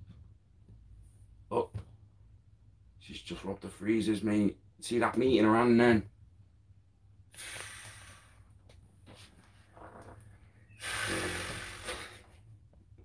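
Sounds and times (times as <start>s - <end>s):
man breathing heavily: 10.7s - 12.4s.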